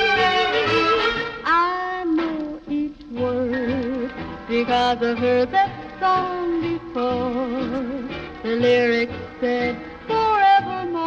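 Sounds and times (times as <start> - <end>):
swing big band music: 0.0 - 11.0.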